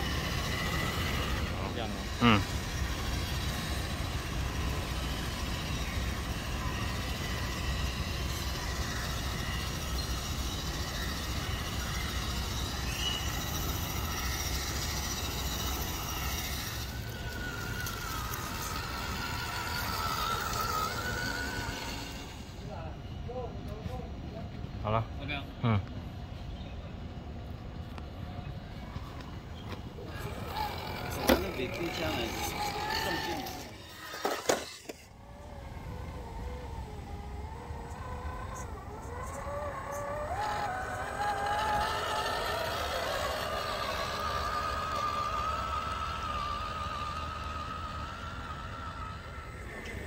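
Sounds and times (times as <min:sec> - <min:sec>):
electric motor whining: 0:00.0 - 0:22.9, 0:28.8 - 0:50.0.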